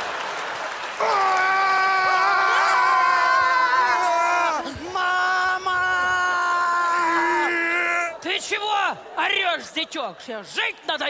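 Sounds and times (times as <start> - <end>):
person screaming: 1.0 - 8.2.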